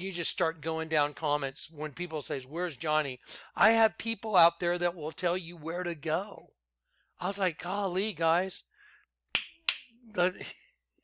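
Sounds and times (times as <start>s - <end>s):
finger snaps: 9.3s - 10.0s.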